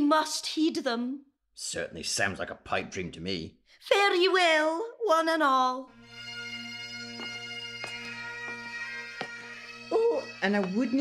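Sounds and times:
bagpipes playing: 5.9 - 11.0.

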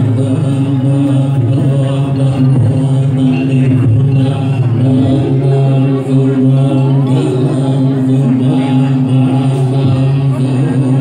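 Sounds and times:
monks chanting in unison: 0.0 - 11.0.

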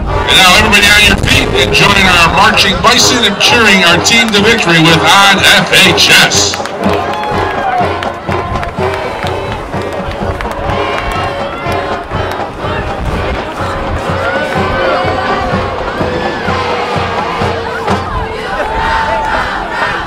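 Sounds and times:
crowd cheering and shouting: 0.0 - 20.0
drumline steady beat: 0.0 - 20.0
marching band playing: 0.0 - 20.0.

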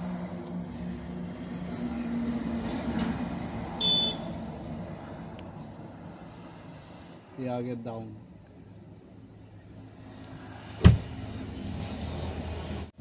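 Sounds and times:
high electronic beep: 3.8 - 4.2.

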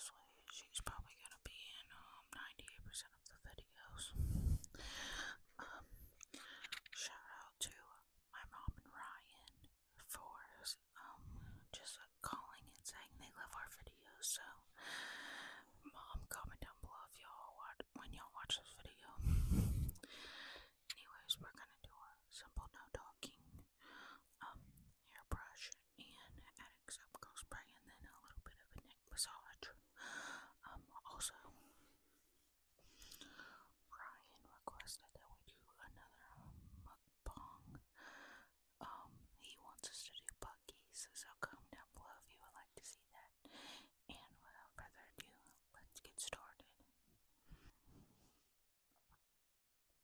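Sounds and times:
woman whispering: 0.0 - 14.8, 15.7 - 19.2, 20.8 - 31.7, 33.8 - 38.0, 38.8 - 43.4, 44.1 - 46.9
soft mouth clicks: 6.2 - 7.0.

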